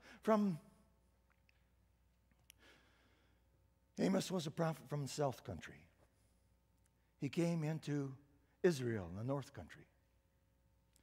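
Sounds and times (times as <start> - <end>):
faint breath: 2.6 - 3.6.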